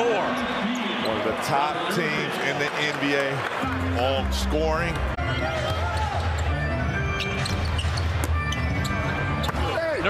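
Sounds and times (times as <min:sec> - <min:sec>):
music over arena speakers: 0:03.4 - 0:10.0.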